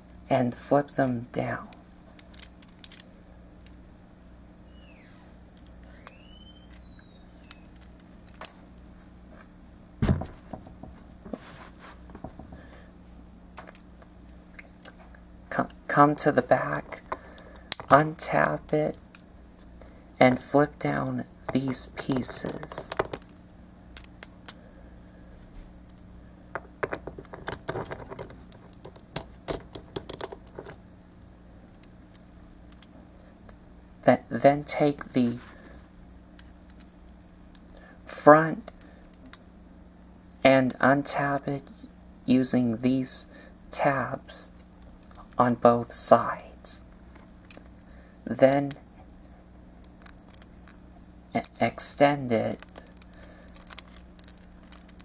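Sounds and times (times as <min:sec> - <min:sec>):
plastic toy parts clicking: 0:02.2 - 0:03.8, 0:27.1 - 0:30.8, 0:49.8 - 0:50.8, 0:52.4 - 0:55.0
knocks and fumbling: 0:10.0 - 0:11.4, 0:12.1 - 0:12.7, 0:26.6 - 0:30.8
plastic toy clicks: 0:28.8 - 0:30.5.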